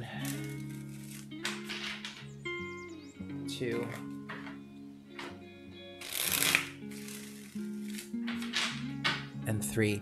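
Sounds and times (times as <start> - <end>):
soft lo-fi music: 0.0 - 10.0
cards shuffled by hand: 6.0 - 8.1.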